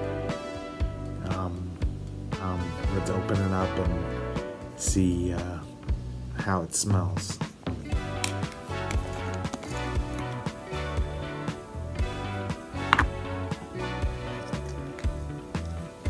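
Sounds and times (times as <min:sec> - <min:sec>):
music with steady beat: 0:00.0 - 0:06.5, 0:07.2 - 0:16.0.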